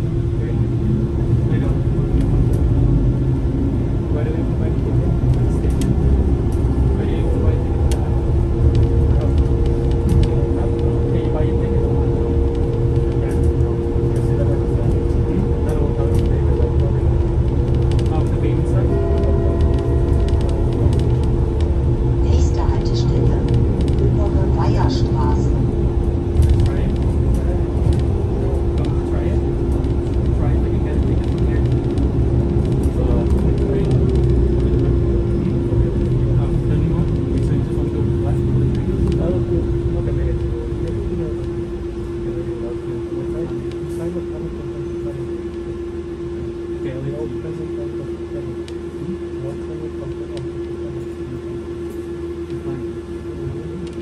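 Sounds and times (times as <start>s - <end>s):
constant electrical hum: 0.0s - 54.0s
higher hum: 0.0s - 54.0s
trolleybus low rumble: 0.0s - 54.0s.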